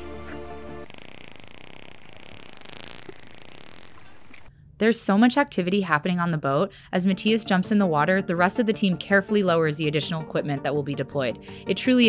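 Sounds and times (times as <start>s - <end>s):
background music: 0.0s - 0.9s, 6.9s - 12.0s
dolphin rapid clicking: 0.8s - 4.5s.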